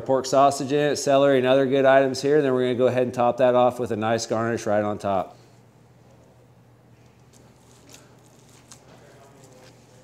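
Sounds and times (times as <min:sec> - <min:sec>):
low steady hum: 0:00.0 - 0:10.0
soft squishing of stuffing: 0:07.0 - 0:10.0.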